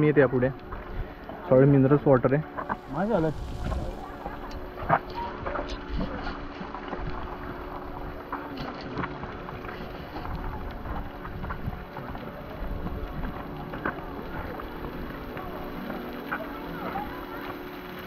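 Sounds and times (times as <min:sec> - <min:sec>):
wind buffeting microphone: 0:02.7 - 0:08.4, 0:09.8 - 0:15.8.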